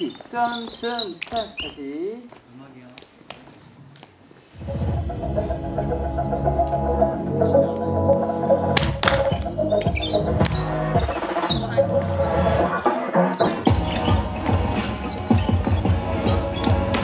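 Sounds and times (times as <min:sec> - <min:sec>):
dance music with a beat: 0:08.1 - 0:17.0.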